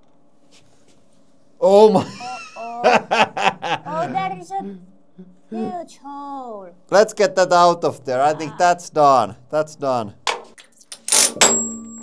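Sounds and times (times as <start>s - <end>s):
steel tooling clanking: 10.3s - 11.9s.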